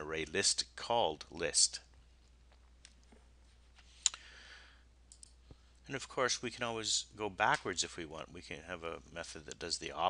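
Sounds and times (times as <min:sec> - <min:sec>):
man speaking: 0:00.0 - 0:01.9, 0:05.8 - 0:10.0
soft breath: 0:03.8 - 0:05.8.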